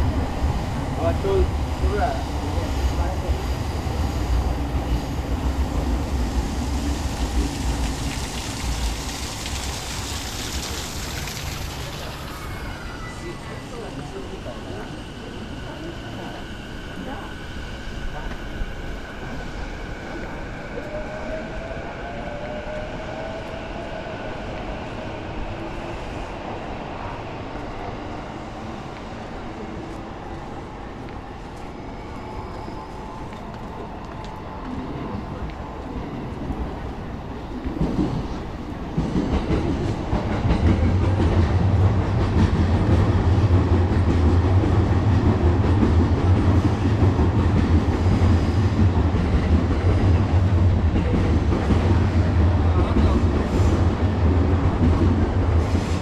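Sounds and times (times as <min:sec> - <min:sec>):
electric train whine: 0:00.0 - 0:56.0
train passing with low hum: 0:00.0 - 0:56.0.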